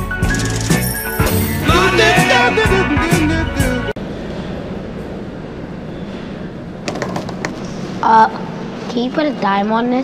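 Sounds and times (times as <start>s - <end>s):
steady background noise: 4.0s - 10.0s.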